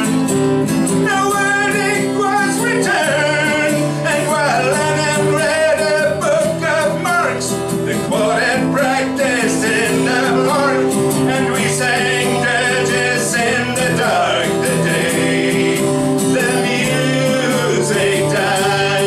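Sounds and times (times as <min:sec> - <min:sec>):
man singing: 0:00.0 - 0:00.3, 0:00.9 - 0:19.0
strummed acoustic guitar: 0:00.0 - 0:19.0.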